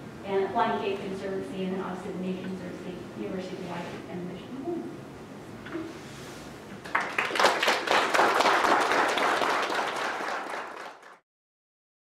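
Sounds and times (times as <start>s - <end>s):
audience applauding: 6.8s - 11.2s.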